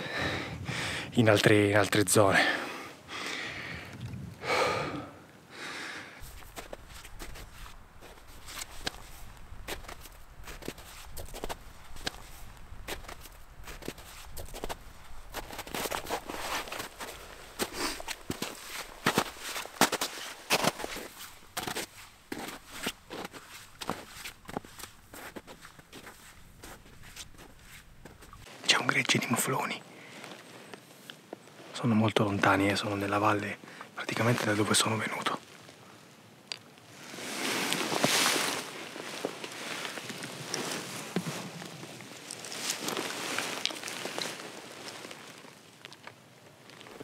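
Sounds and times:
footsteps on snowy grass: 0:06.2 - 0:28.6, 0:37.0 - 0:45.6.

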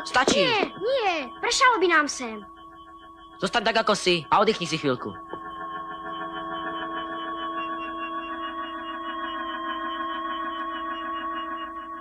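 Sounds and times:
shimmering electronic drone: 0:00.0 - 0:12.0.

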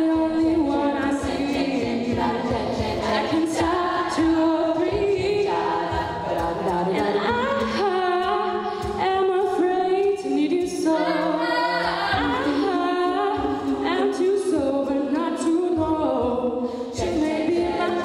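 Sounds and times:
women singing a cappella: 0:00.0 - 0:18.0.

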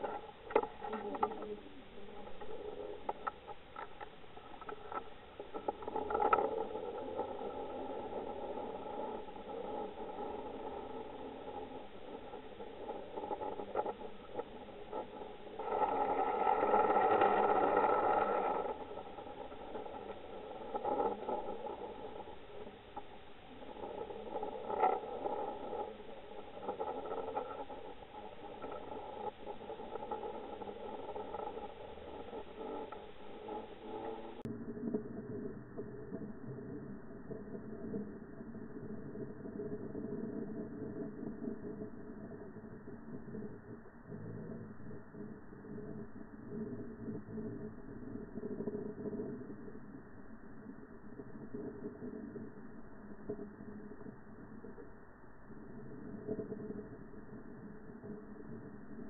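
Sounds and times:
underwater clicks and knocks: 0:00.0 - 0:09.0
underwater hum: 0:00.0 - 0:59.0.

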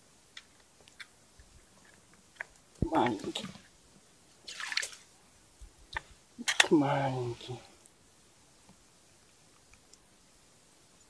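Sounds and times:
water splash: 0:04.4 - 0:05.1.

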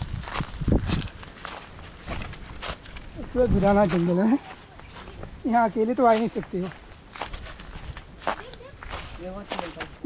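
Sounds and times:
footsteps on dry leaves: 0:00.0 - 0:10.0.

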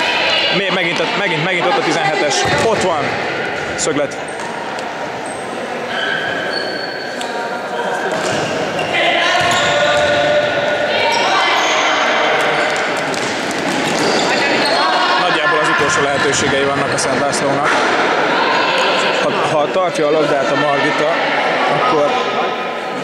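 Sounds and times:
players calling out: 0:00.0 - 0:22.3.

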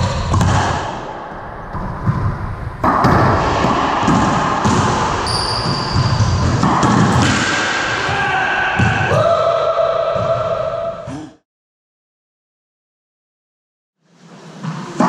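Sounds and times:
racquets striking ball: 0:00.0 - 0:01.2, 0:02.1 - 0:08.2
racquetball hitting walls: 0:00.0 - 0:09.3
high squeak: 0:05.2 - 0:06.3.

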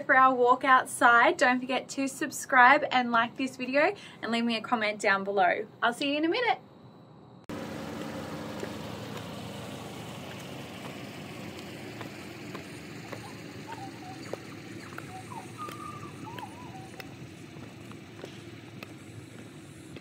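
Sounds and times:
low traffic hum: 0:00.0 - 0:20.0
high heels on concrete: 0:08.0 - 0:20.0
bird chirps: 0:10.9 - 0:20.0.

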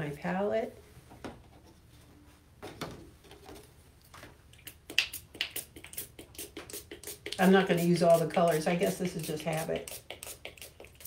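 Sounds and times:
spray bottle spritzing: 0:04.6 - 0:11.0.

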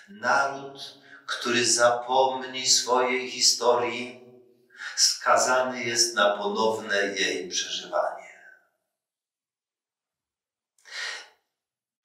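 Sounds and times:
man breathing: 0:01.0 - 0:01.3, 0:10.9 - 0:11.3.

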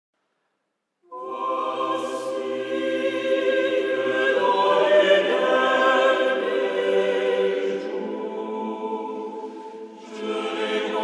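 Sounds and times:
choir singing sustained chords: 0:01.1 - 0:11.0.

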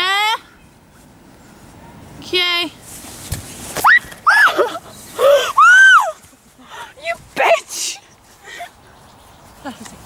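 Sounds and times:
young women squealing: 0:03.8 - 0:06.2.

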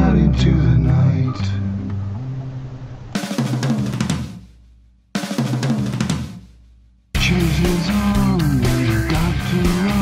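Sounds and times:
drum kit bursts: 0:03.1 - 0:10.0.

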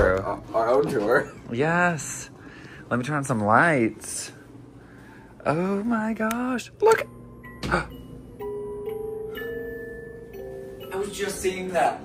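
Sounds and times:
bell-like chiming melody: 0:06.9 - 0:12.0.

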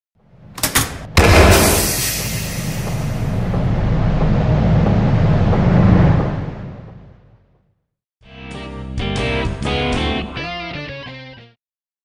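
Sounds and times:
low noisy rumble: 0:00.2 - 0:07.8.

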